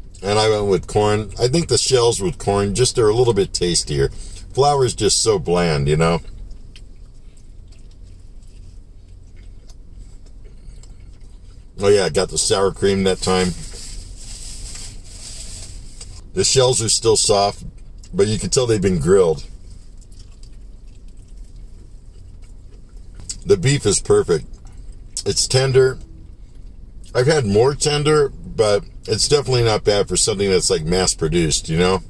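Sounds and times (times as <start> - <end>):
low hum inside car: 0.0 - 32.0
person chewing food: 6.2 - 11.8, 19.5 - 23.4.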